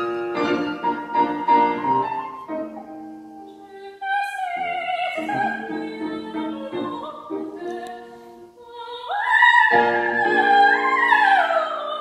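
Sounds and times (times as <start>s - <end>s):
grand piano playing: 0.0s - 3.6s.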